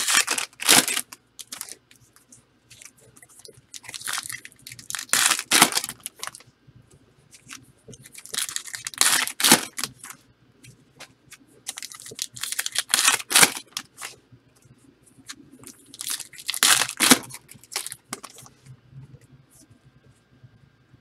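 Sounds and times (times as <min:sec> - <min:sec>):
foil wrappers tearing and crinkling: 0:00.0 - 0:01.8, 0:03.8 - 0:06.4, 0:08.0 - 0:10.1, 0:11.7 - 0:14.1, 0:15.8 - 0:18.4.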